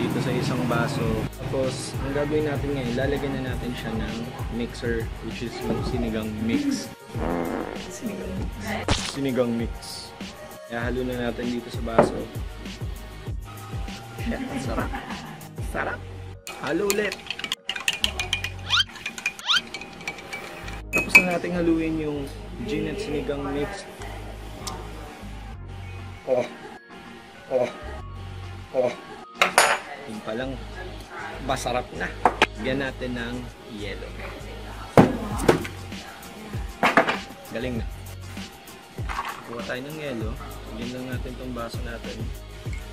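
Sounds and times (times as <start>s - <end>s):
background music with bass: 0.0s - 19.8s, 20.4s - 29.7s, 30.3s - 42.9s
box knocking on wooden table: 12.0s - 12.4s
spoon clinking in glass mug: 16.5s - 21.4s.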